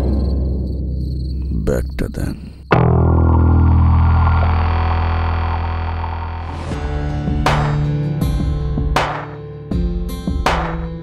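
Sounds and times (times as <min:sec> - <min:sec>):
low synthesizer drone: 0:02.7 - 0:08.2.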